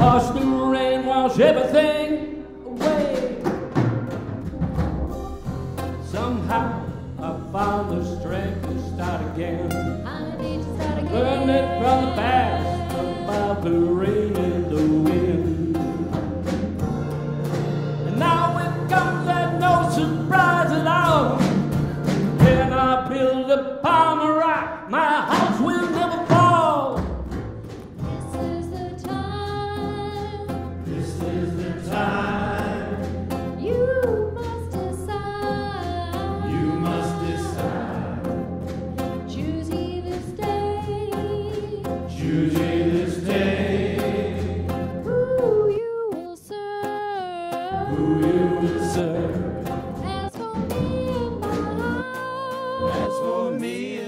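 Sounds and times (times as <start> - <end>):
drum strikes: 0.0 - 0.8, 2.8 - 8.0, 10.7 - 23.0, 25.3 - 28.4, 30.9 - 33.7
person singing: 0.0 - 3.8, 5.9 - 16.4, 18.0 - 21.7, 28.1 - 38.6, 39.2 - 54.0
worship band playing: 0.0 - 23.4, 25.3 - 28.3, 30.6 - 34.9, 35.6 - 40.9, 41.7 - 45.6, 47.8 - 50.2, 52.8 - 54.0
keyboard: 0.0 - 23.8, 25.4 - 54.0
acoustic guitar: 0.0 - 54.0
electric bass: 4.5 - 22.8.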